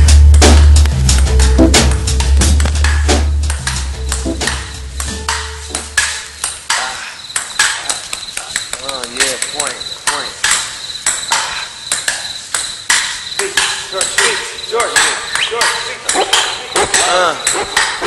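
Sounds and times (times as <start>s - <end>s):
deep bass line: 0.0s - 6.0s.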